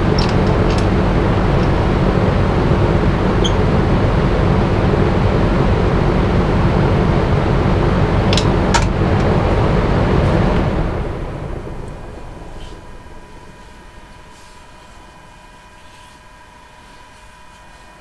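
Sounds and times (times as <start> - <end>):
wood lathe running: 0.0 - 11.2
lathe winding down: 0.0 - 14.3.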